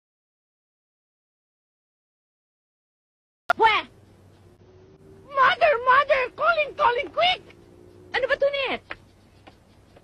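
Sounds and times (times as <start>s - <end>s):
high-pitched voice speaking: 5.3s - 7.5s, 8.1s - 8.9s.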